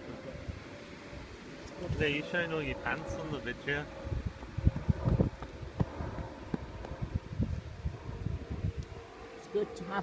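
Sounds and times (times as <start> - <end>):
wind buffeting microphone: 0.0 - 9.8.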